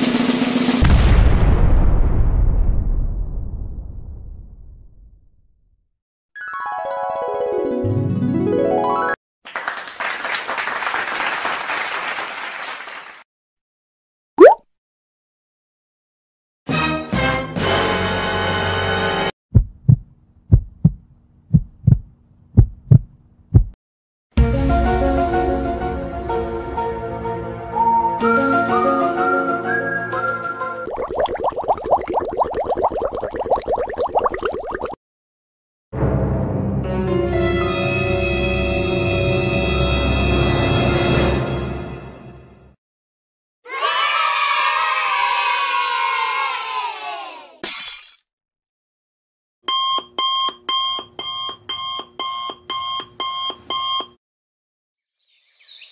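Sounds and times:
heartbeat thumps: 19.5s - 23.8s
children cheering and shouting: 43.7s - 47.6s
glass breaking: 47.6s - 48.2s.

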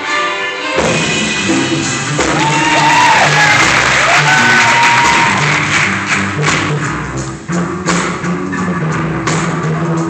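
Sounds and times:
live funk band playing: 0.7s - 10.0s
audience cheering and clapping: 2.1s - 6.7s.

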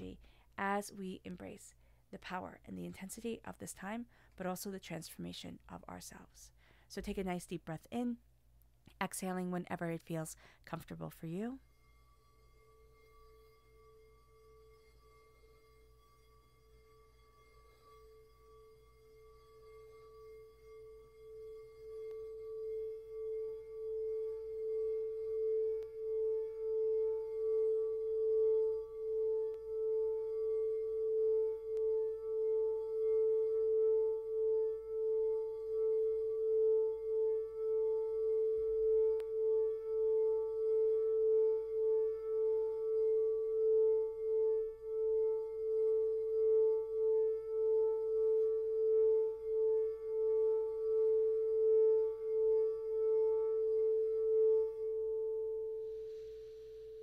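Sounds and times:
singing bowl sustained tone: 0.0s - 7.8s, 9.2s - 57.0s.

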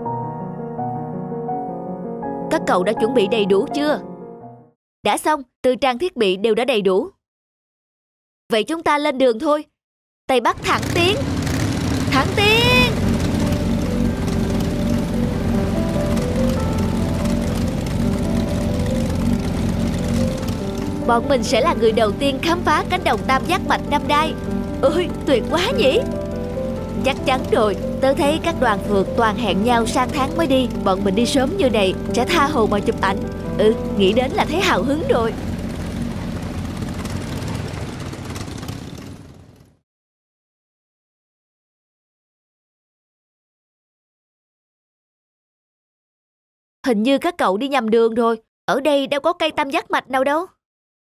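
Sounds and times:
cartoon motorbike engine running: 10.3s - 39.8s
music with simple stepping melody: 13.2s - 22.6s, 23.2s - 35.0s.

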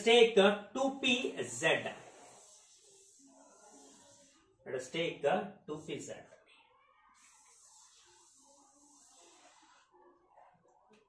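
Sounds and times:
person speaking: 0.0s - 6.3s
marker squeaking on whiteboard: 2.0s - 4.6s, 6.5s - 11.0s.

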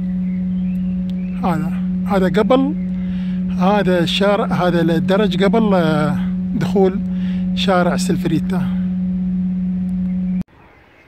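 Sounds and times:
steady low hum: 0.0s - 10.5s
faint outdoor background: 0.0s - 11.0s.

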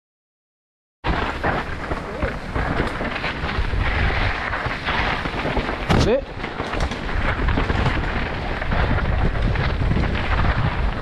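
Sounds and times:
bike tyres rumbling on trail: 1.0s - 11.0s
wind buffeting microphone: 1.1s - 11.0s.

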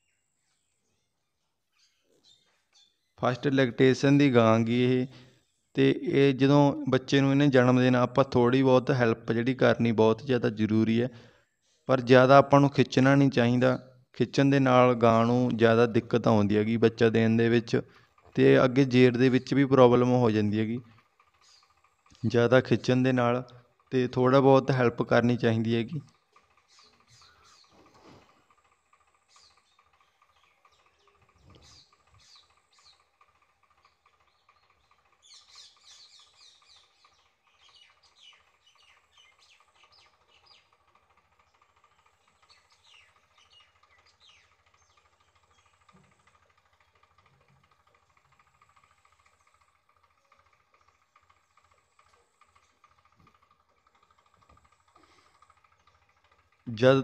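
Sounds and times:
faint bird chirps: 0.0s - 3.3s, 26.1s - 28.4s, 29.2s - 33.2s
faint steady hum: 0.0s - 57.0s.

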